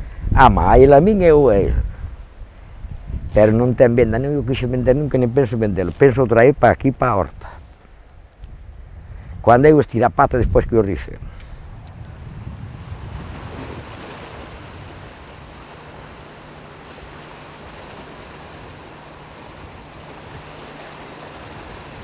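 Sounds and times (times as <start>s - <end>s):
sea waves and surf: 11.4s - 22.0s.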